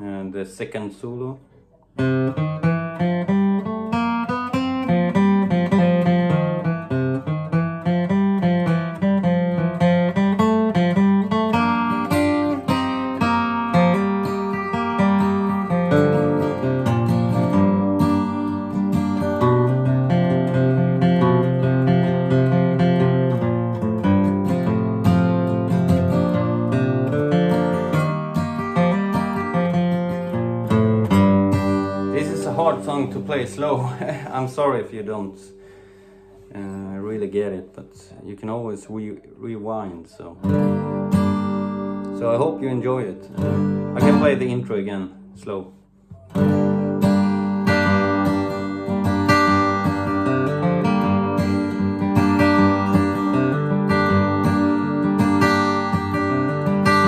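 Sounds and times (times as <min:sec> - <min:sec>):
flatpicked acoustic guitar: 0:00.0 - 0:57.0.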